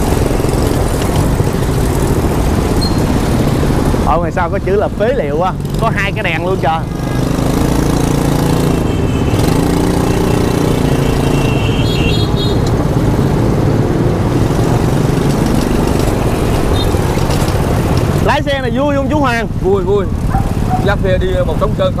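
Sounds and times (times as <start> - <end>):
street traffic: 0.0 - 22.0.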